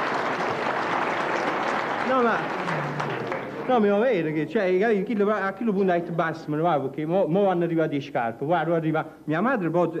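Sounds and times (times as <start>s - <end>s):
audience applauding: 0.0s - 4.2s.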